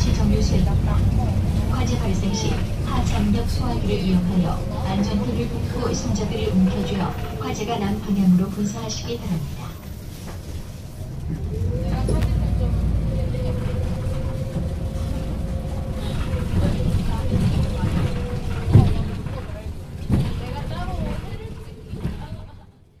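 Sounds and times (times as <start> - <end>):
bus engine and road rumble: 0.0 - 23.0.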